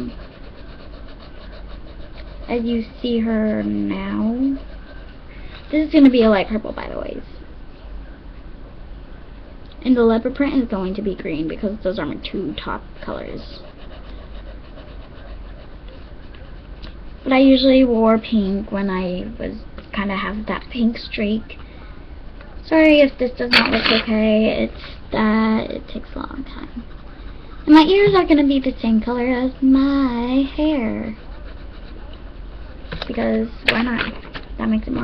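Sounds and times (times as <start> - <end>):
pencil scratching on paper: 0.0 - 7.1, 9.9 - 19.0, 22.9 - 34.0.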